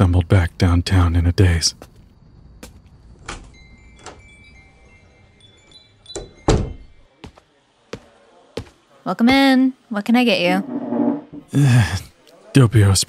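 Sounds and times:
door bell jingling: 0:03.5 - 0:07.0
door shutting thunk: 0:06.2 - 0:06.9.

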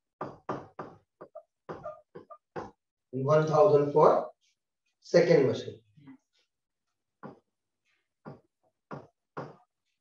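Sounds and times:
stylus knocking on tablet: 0:00.2 - 0:02.8, 0:08.2 - 0:09.7.

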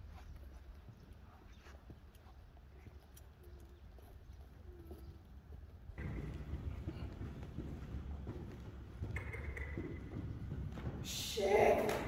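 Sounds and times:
hoofbeats on sand: 0:00.0 - 0:12.0.

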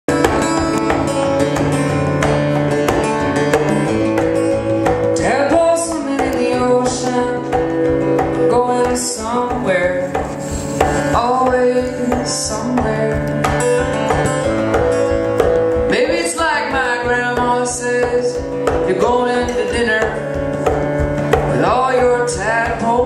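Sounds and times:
acoustic guitar strumming: 0:00.0 - 0:23.0
person singing: 0:03.4 - 0:14.9, 0:15.8 - 0:20.4, 0:21.4 - 0:23.0.

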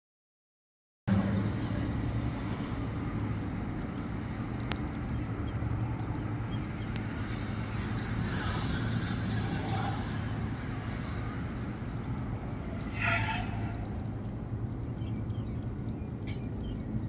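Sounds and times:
low even traffic hum: 0:01.1 - 0:17.0.

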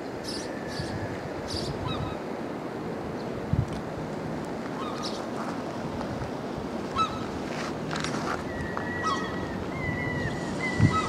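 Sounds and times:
wind rushing over microphone: 0:00.0 - 0:04.5, 0:05.6 - 0:11.0.

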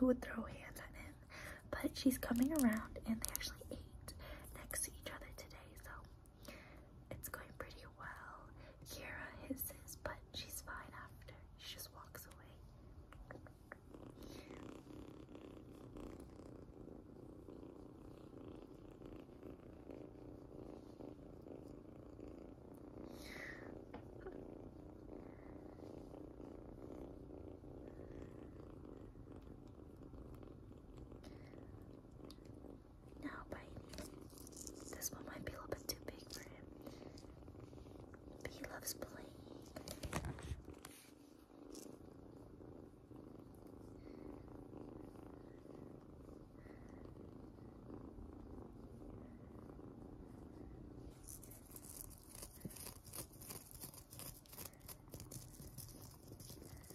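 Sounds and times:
kitten purring: 0:00.0 - 0:56.9.

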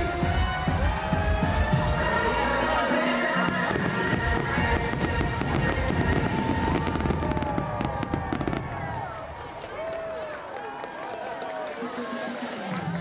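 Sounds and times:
music from loudspeakers: 0:00.0 - 0:07.2, 0:11.7 - 0:13.0
fireworks bursting: 0:00.0 - 0:09.2.

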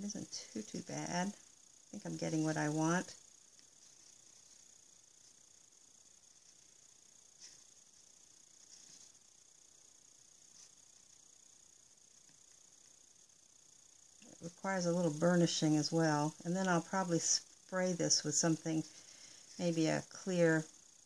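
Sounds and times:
faint high hiss: 0:00.0 - 0:21.0
paintbrush scraping: 0:07.4 - 0:09.2.

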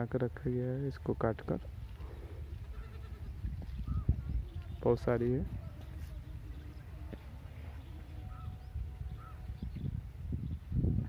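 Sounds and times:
low rumble of wind: 0:00.0 - 0:11.0.

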